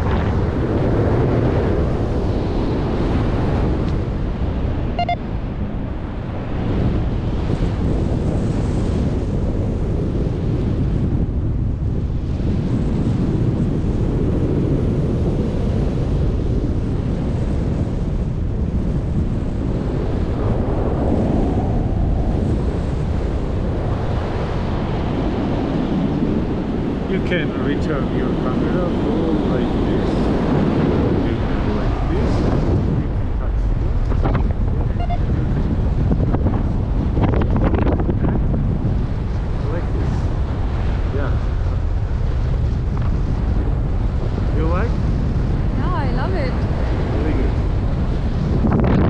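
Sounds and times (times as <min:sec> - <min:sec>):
wind buffeting microphone: 0:00.0 - 0:49.0
short beep: 0:05.0 - 0:05.3, 0:34.9 - 0:35.3.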